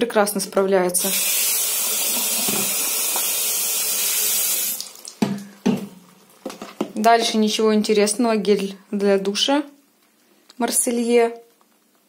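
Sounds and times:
tap water splashing on plastic bottle: 0:02.2 - 0:03.4, 0:04.7 - 0:07.0.

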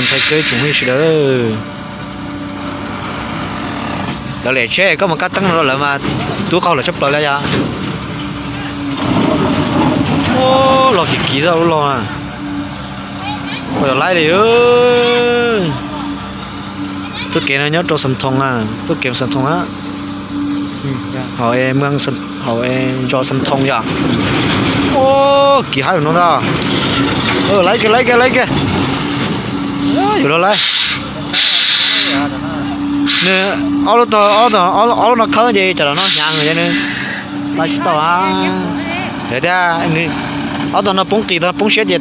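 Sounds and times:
person speaking: 0:00.0 - 0:01.2, 0:32.1 - 0:40.2
people talking: 0:00.0 - 0:01.7, 0:04.4 - 0:07.6, 0:09.8 - 0:12.2, 0:13.2 - 0:16.2, 0:16.9 - 0:19.7, 0:20.8 - 0:23.9, 0:24.9 - 0:26.5, 0:27.3 - 0:28.6, 0:29.8 - 0:31.4, 0:32.0 - 0:42.0
truck engine running: 0:00.0 - 0:42.0.

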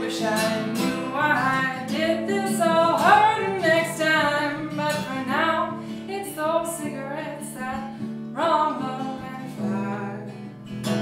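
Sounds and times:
strummed acoustic guitar: 0:00.0 - 0:11.0
woman singing folk song: 0:00.0 - 0:11.0.

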